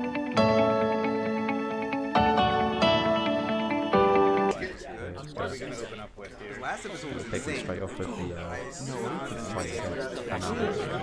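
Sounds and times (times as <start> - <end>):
people talking and exclaiming: 4.2 - 11.0.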